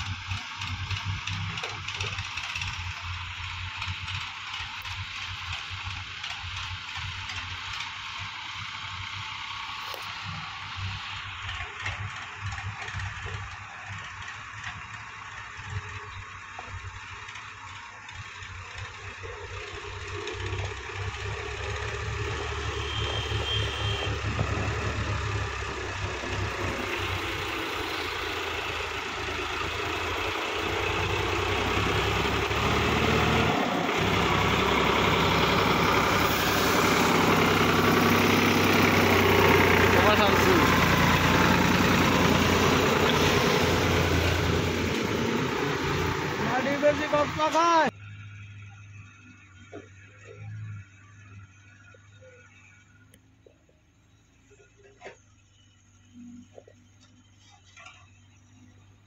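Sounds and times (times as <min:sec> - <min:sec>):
tractor diesel engine labouring: 0:00.0 - 0:53.8.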